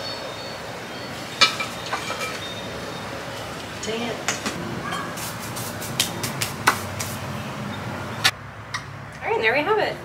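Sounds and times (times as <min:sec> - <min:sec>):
hands brushing and slapping: 0:04.4 - 0:07.3.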